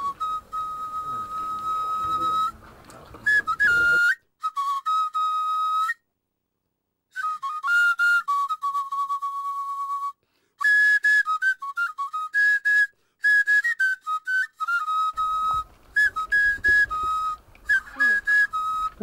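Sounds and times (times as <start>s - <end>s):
solo flute-like melody: 0.0s - 6.1s, 7.1s - 19.0s
low background noise: 0.0s - 10.1s, 14.1s - 19.0s.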